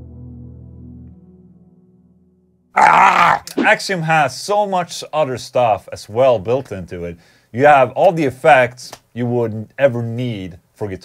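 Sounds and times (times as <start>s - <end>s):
man yelling loudly: 2.8s - 4.2s.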